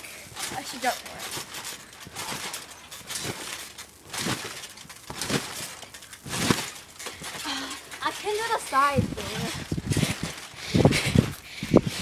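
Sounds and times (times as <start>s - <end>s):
trampoline mat and springs bouncing: 0.0s - 12.0s.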